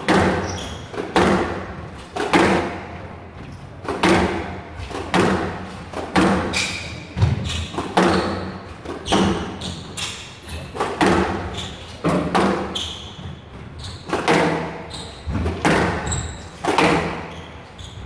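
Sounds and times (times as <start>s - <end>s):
shoes squeaking on court: 0.0s - 1.3s, 5.6s - 18.0s
squash racket hits: 0.0s - 3.2s, 3.8s - 17.4s.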